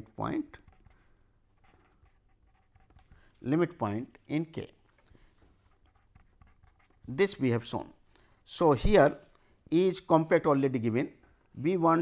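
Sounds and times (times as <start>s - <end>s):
pen scratching on paper: 0.5s - 3.2s, 5.4s - 7.4s.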